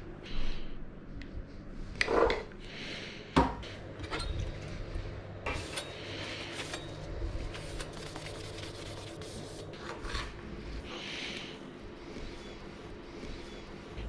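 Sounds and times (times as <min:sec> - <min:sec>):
dish brush scrubbing a plate: 0:07.6 - 0:10.3.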